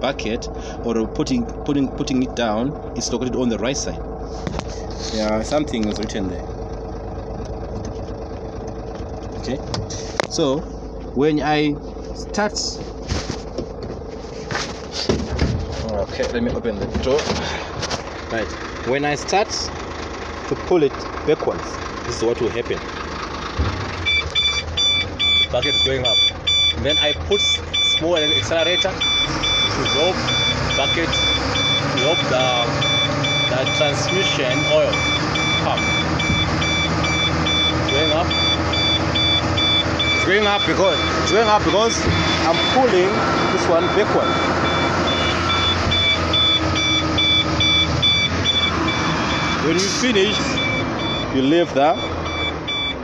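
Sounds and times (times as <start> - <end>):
diesel truck engine running: 0.0 - 53.0
high warning beeper: 24.0 - 53.0.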